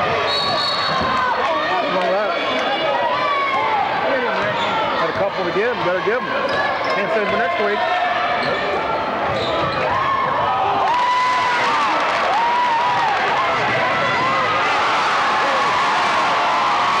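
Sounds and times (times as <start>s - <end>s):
crowd shouting and chatter: 0.0s - 17.0s.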